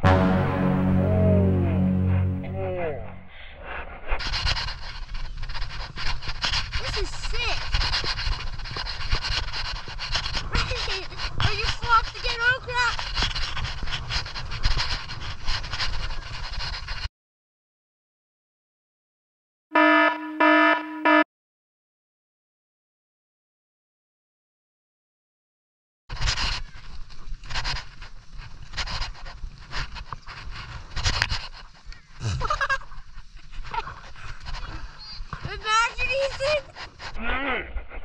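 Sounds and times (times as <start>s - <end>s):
wind and snow noise: 3.5s - 17.1s, 26.1s - 38.0s
knocks and scrapes: 4.1s - 17.1s, 26.1s - 37.2s
short electronic beeps: 19.8s - 21.2s.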